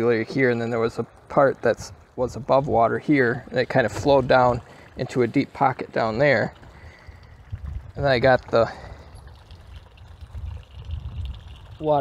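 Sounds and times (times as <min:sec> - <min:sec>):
water splashing over rocks: 0:00.0 - 0:12.0.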